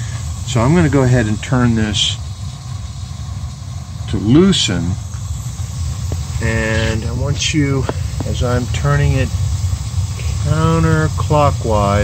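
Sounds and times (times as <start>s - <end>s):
gas burner rumbling: 0.0s - 12.0s.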